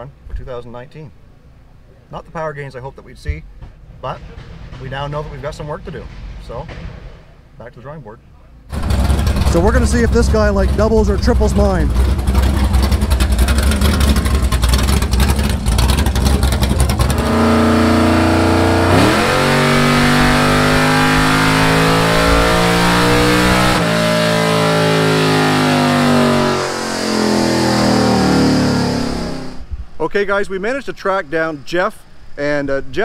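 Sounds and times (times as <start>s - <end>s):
car engine lumpy rumble: 0.0s - 30.0s
engine full-throttle dyno pull: 8.7s - 29.7s.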